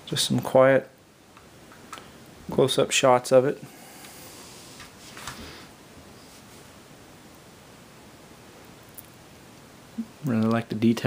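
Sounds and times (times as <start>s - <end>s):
faint plastic rustle: 4.1s - 6.8s.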